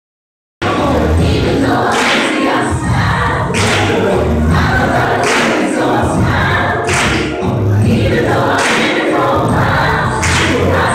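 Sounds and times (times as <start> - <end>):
choir singing: 0.6 - 10.9.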